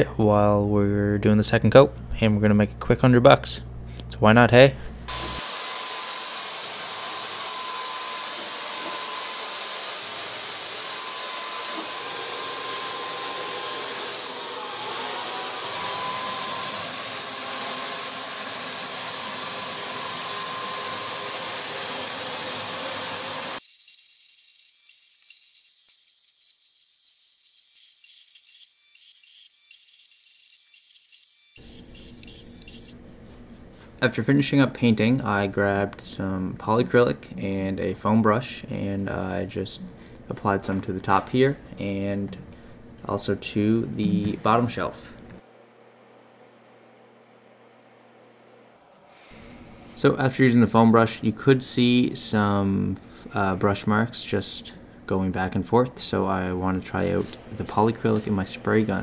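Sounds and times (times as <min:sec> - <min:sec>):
paint sprayer hissing: 0:23.2 - 0:33.0.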